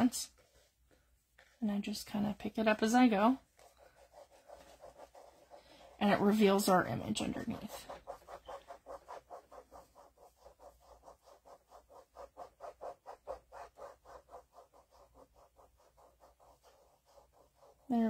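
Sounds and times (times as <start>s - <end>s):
fingertips scratching wet paper: 0.0s - 18.0s.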